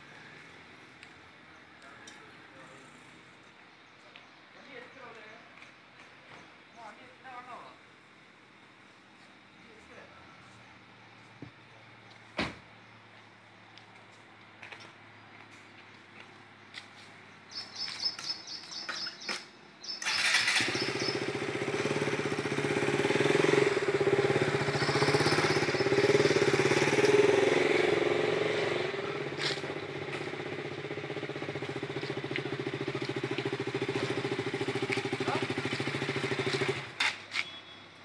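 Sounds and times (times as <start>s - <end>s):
vehicle engine running: 20.1s - 37.0s.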